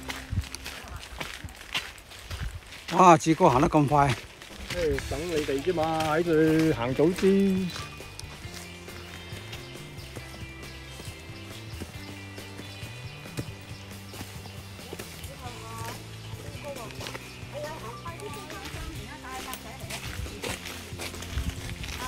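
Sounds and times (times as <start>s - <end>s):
music with low tones: 0.0s - 1.6s, 3.8s - 22.0s
faint voices: 0.0s - 2.0s
footsteps on stone steps: 0.0s - 22.0s.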